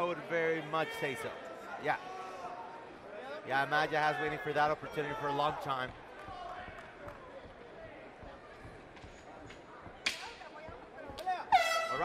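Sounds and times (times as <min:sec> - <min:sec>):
air horn blast: 0:11.5 - 0:12.0.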